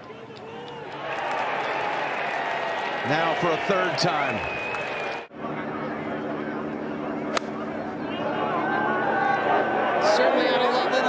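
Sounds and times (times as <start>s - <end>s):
crowd applauding: 0.0s - 5.3s.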